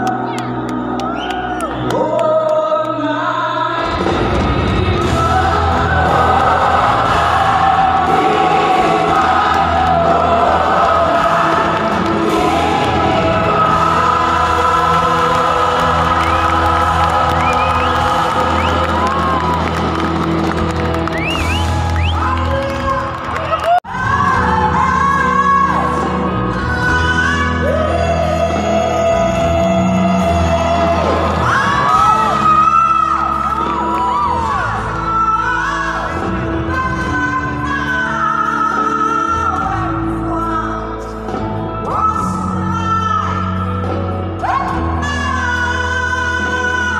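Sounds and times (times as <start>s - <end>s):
live band with singer: 0.0s - 46.9s.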